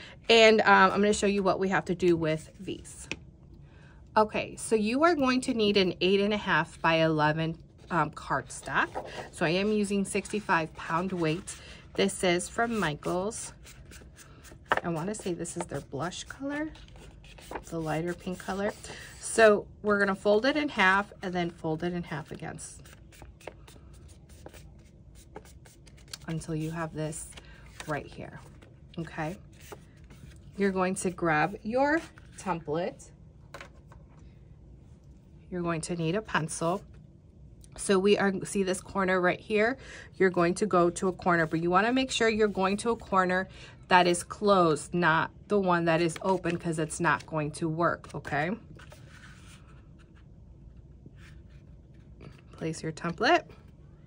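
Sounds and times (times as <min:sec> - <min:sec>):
soft paper brushing scrape: 0:07.8 - 0:19.5, 0:20.2 - 0:32.7, 0:48.2 - 0:52.4
paper rustling: 0:08.6 - 0:19.2, 0:22.2 - 0:32.4.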